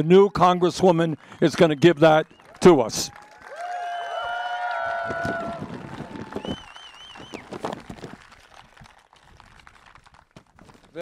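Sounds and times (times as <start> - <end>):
crowd cheering and clapping: 0.0 - 10.6
whooping voices: 2.8 - 7.5.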